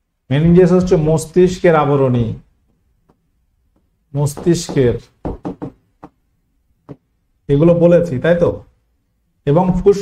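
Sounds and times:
marker pen tapping on a board: 3.8s - 6.2s, 6.9s - 7.1s.

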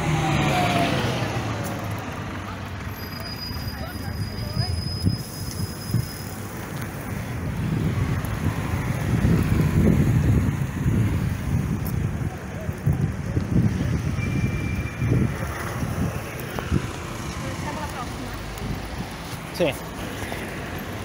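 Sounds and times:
wind buffeting microphone: 4.2s - 19.5s.

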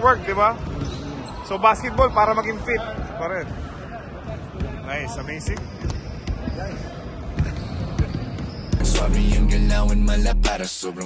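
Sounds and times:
basketballs bouncing on wooden floor: 5.4s - 8.8s
loud hip-hop music: 8.8s - 11.0s.

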